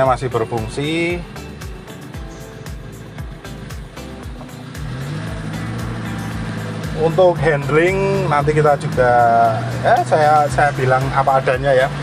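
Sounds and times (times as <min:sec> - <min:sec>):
car engine running: 0:00.0 - 0:12.0
music with steady beat: 0:00.0 - 0:12.0.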